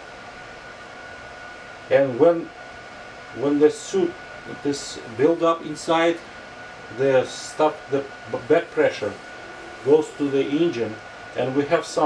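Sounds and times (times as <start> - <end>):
background hiss: 3.3 - 12.0
faint high tone: 9.3 - 10.5.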